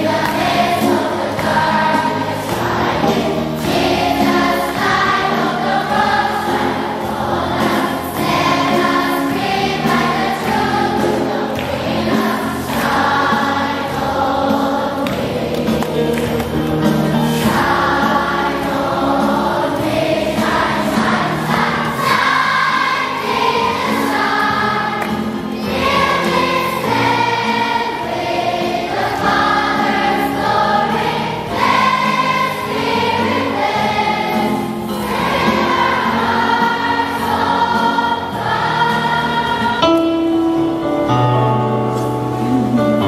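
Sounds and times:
choir singing: 0.0s - 40.7s.

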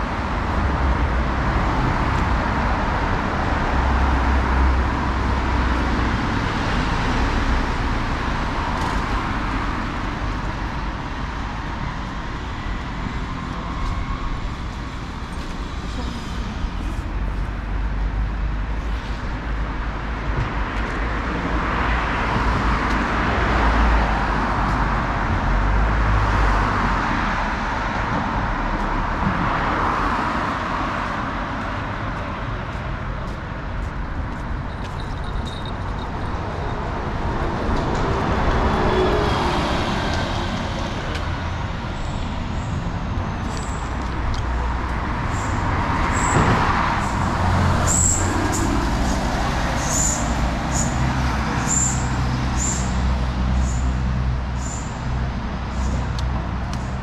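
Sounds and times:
cars driving past: 0.0s - 57.0s.

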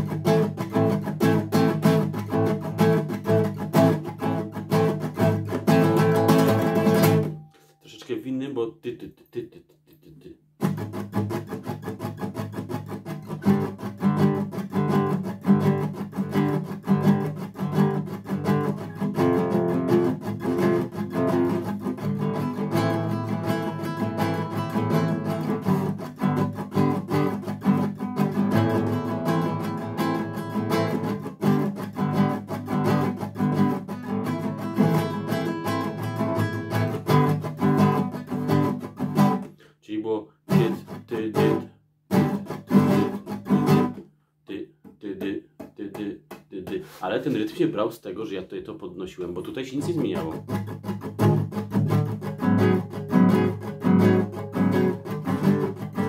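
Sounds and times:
acoustic guitar strumming: 0.0s - 8.2s, 10.3s - 39.7s, 40.5s - 47.5s, 49.8s - 56.0s.

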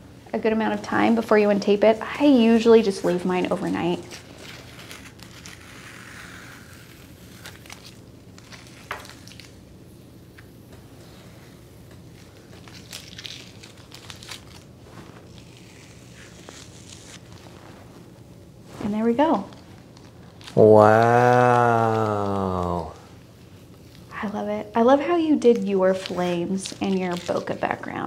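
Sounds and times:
tape peeling off paper: 3.4s - 9.6s, 11.9s - 18.2s, 19.5s - 20.8s, 25.4s - 27.8s.

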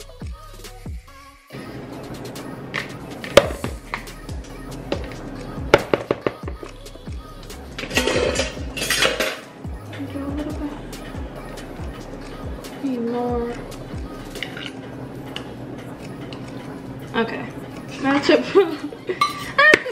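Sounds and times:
background music with low beat: 0.0s - 1.2s, 1.9s - 18.1s.

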